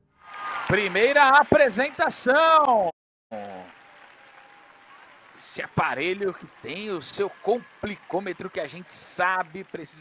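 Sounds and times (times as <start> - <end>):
audience applauding: 0.2 - 10.0.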